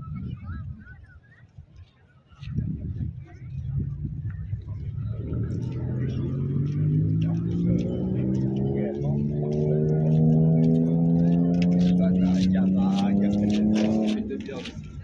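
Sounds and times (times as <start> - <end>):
vehicle engine speeding up: 4.6 - 15.0.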